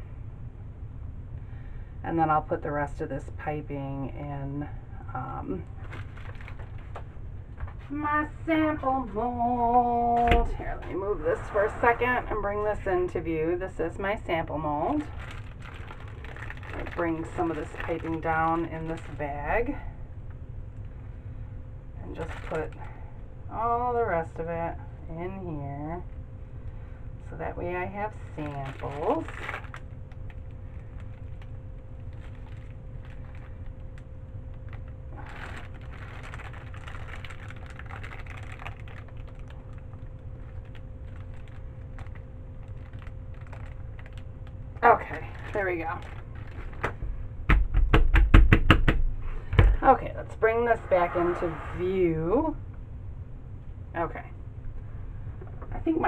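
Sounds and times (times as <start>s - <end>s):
steady low hum: 0.0s - 56.0s
plastic piping bag crinkling: 5.6s - 7.1s, 14.5s - 19.7s, 22.1s - 22.9s, 28.2s - 47.0s
gloved hands handling objects: 28.3s - 47.2s.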